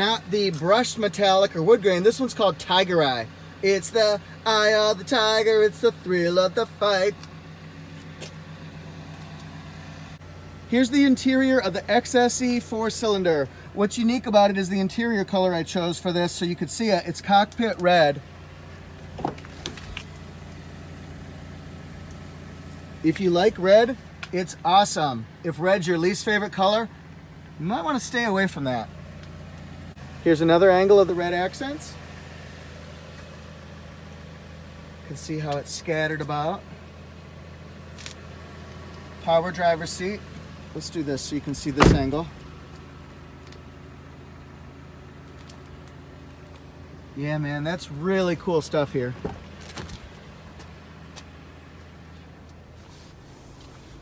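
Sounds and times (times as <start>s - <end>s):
car engine idling: 0.0s - 54.0s.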